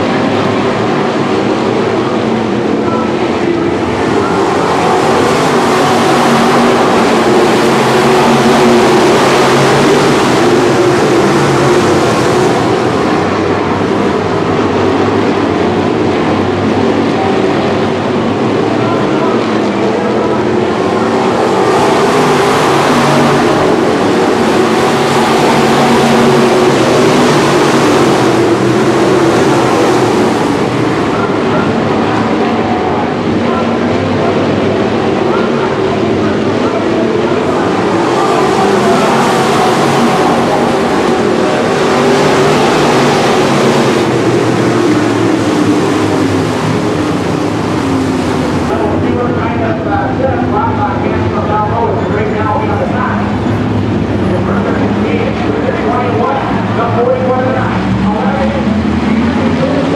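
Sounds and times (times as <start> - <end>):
race car engines droning: 0.0 - 59.9.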